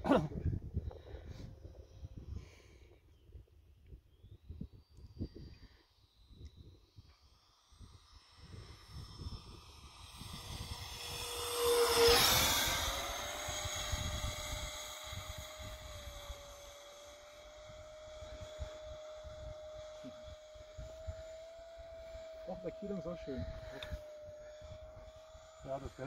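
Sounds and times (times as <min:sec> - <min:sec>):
electric ducted fan whining: 0:00.0 - 0:26.0.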